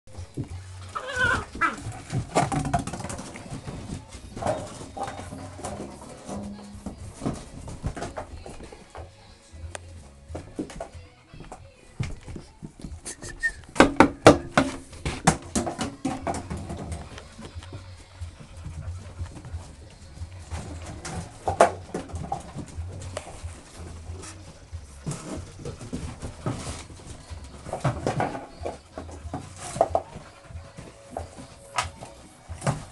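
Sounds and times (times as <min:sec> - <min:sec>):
puppies scuffling: 0:00.1 - 0:32.9
puppy vocal sounds: 0:00.9 - 0:02.3, 0:16.6 - 0:21.4.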